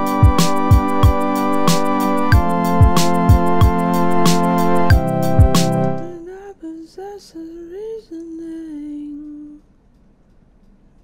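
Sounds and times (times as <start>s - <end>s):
woman singing unaccompanied: 6.1s - 9.7s.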